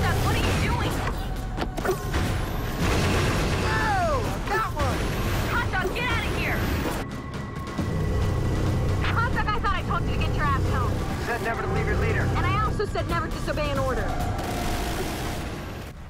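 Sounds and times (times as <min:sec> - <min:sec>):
soundtrack music: 0:00.0 - 0:16.0
low rumble of spacecraft: 0:06.9 - 0:14.4.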